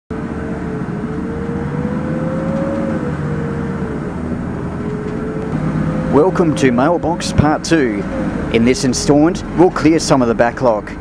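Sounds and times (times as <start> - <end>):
car engine and tyre rumble: 0.1 - 11.0.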